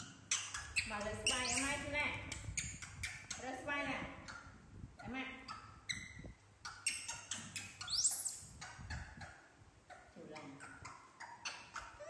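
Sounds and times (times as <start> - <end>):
monkey squealing: 0.0 - 1.8, 5.5 - 12.0
baby monkeys squeaking: 0.0 - 3.4, 5.4 - 12.0.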